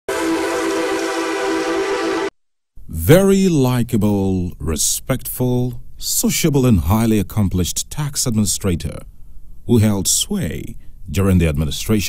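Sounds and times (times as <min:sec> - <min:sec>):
sustained electronic chord: 0:00.1 - 0:02.4.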